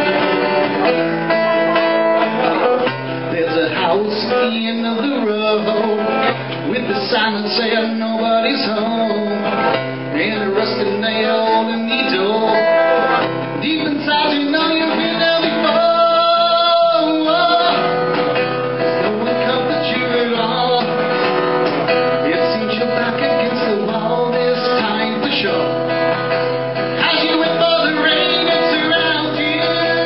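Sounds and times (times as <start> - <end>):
acoustic guitar playing chords: 0.0 - 30.0.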